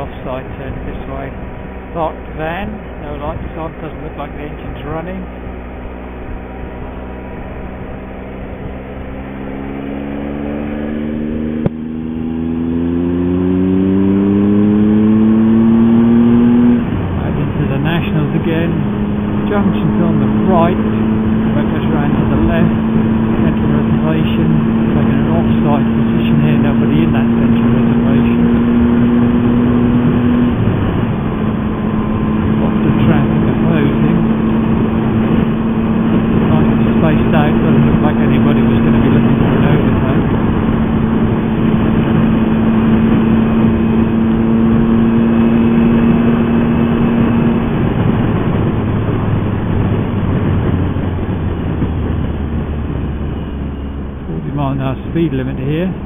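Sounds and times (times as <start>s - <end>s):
motorcycle engine cruising: 0.0s - 56.0s
wind and road rush: 0.0s - 56.0s.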